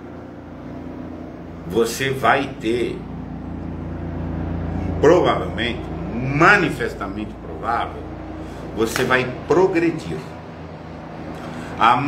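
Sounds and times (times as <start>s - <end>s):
low rumbling hum: 0.0s - 12.0s.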